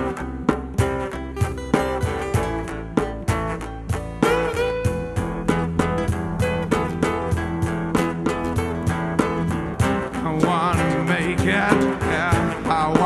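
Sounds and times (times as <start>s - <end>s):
acoustic band playing: 0.0s - 13.0s.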